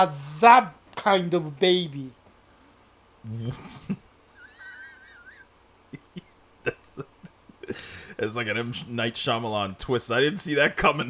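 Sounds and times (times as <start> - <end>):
person laughing squeakily: 3.4 - 7.2.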